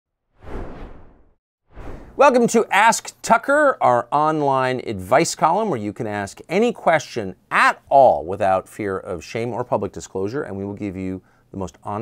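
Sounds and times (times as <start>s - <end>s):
whoosh: 0.3s - 2.2s.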